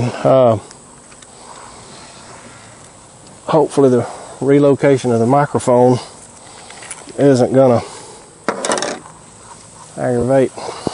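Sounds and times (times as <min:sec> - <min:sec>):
insects hissing: 0:00.0 - 0:10.9.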